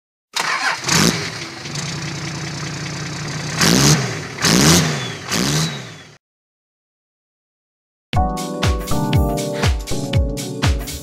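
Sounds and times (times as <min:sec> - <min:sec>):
engine starting and revving: 0:00.4 - 0:06.2.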